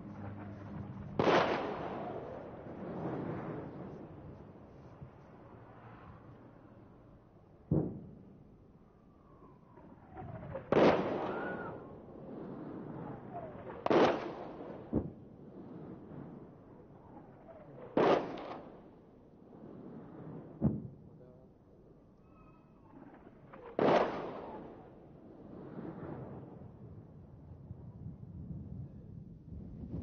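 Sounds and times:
distant explosion cracks: 0.0s - 4.1s, 9.8s - 15.2s.

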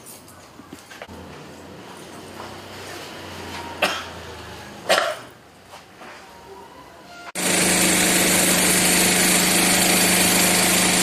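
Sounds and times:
man coughing into a mask: 3.8s - 4.2s, 4.9s - 5.3s.

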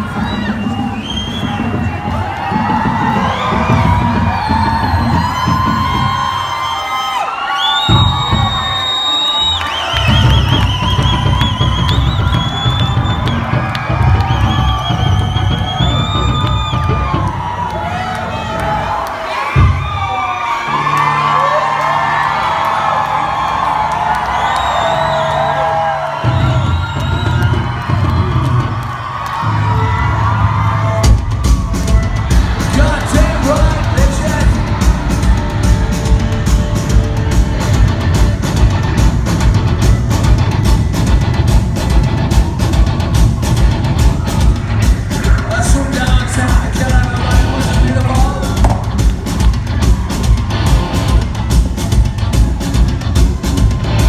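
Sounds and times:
crowd cheering and whooping: 0.0s - 54.0s
live rock band: 9.8s - 17.8s, 30.5s - 54.0s.

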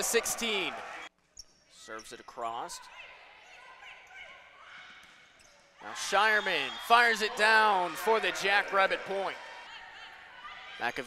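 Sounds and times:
faint volleyball court noise: 0.0s - 11.0s.

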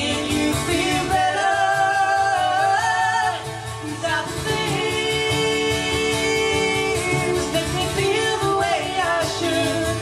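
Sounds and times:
acoustic guitars strumming: 0.0s - 10.0s
woman singing: 0.0s - 10.0s.

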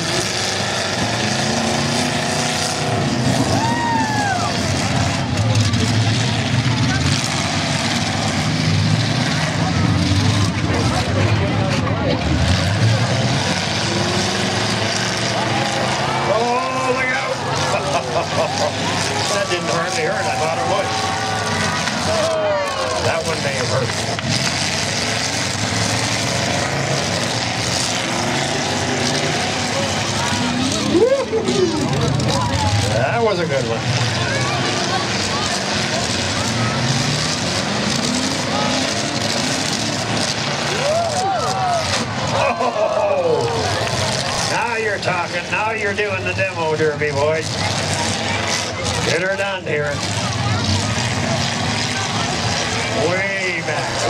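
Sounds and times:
truck engines revving: 0.0s - 54.0s
voices: 0.0s - 54.0s.

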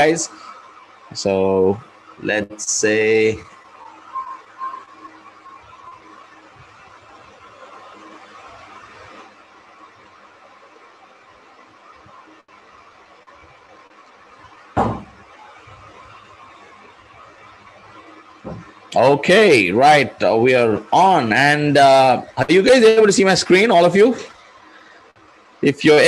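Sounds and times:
faint room noise: 0.0s - 26.0s
microphone hiss: 0.0s - 26.0s
loud thump near microphone: 14.8s - 15.2s, 18.4s - 18.8s.

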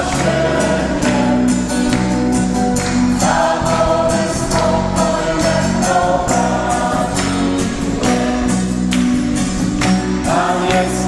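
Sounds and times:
acoustic guitar: 0.0s - 11.0s
congregation singing: 0.0s - 11.0s
hands clapping on the beat: 0.0s - 11.0s.

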